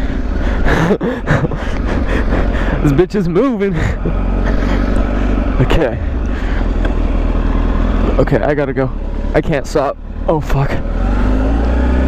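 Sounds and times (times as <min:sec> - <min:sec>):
motorcycle engine rumbling: 0:00.0 - 0:12.0
person laughing: 0:00.5 - 0:05.4.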